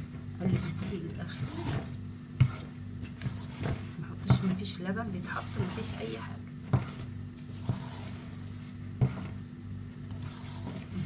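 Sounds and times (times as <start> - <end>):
steady low hum: 0.0 - 11.0
utensil knocking on mixing bowl: 3.6 - 4.6.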